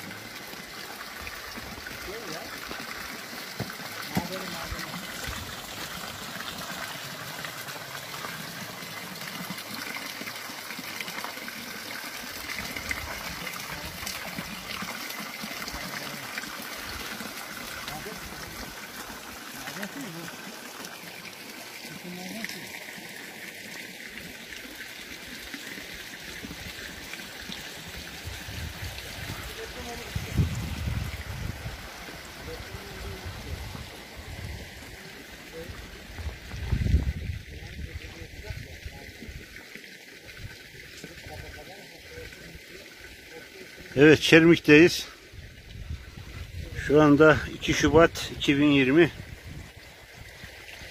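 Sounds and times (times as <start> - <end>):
water trickling in a stream: 0.0 - 50.9.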